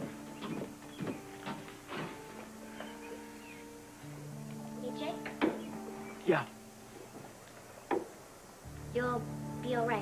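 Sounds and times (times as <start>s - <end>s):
sustained background chords: 0.0s - 10.0s
short scuffing sounds: 0.5s - 2.3s.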